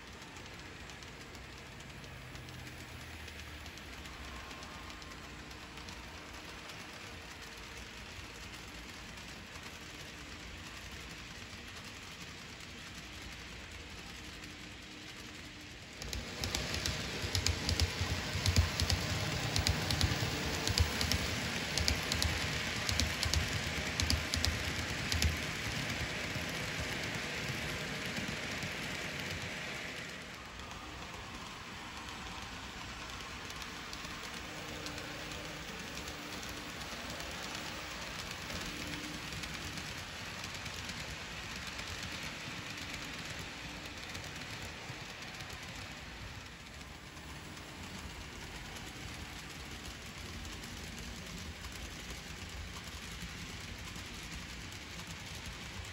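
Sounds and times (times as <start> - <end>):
model train motor and wheels whirring: 0.0 - 55.9
wheels clicking over track: 0.0 - 55.9.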